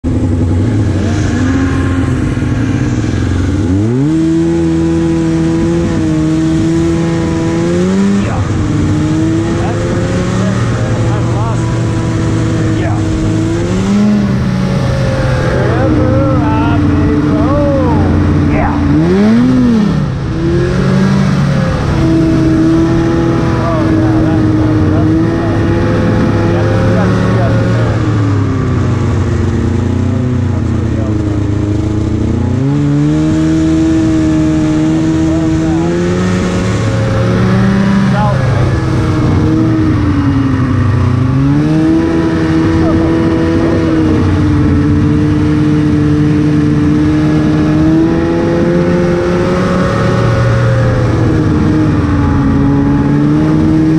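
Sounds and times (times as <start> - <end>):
snowmobile engine revving: 0.0 - 53.9.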